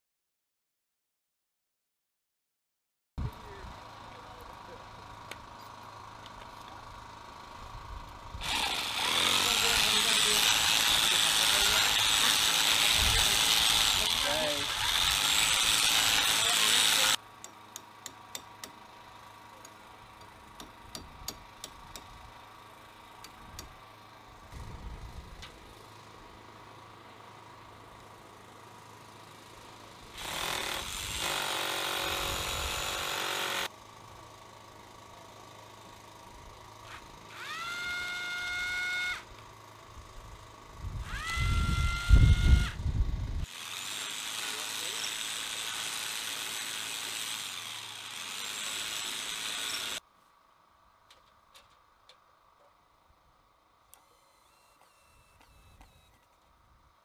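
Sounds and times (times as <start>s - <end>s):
cordless drill whining: 8.4s - 17.2s, 36.9s - 39.3s, 41.0s - 42.8s, 43.4s - 50.0s, 53.9s - 56.3s
drill bit boring into surface: 8.4s - 17.2s, 37.3s - 39.2s, 41.0s - 42.8s, 43.4s - 50.0s.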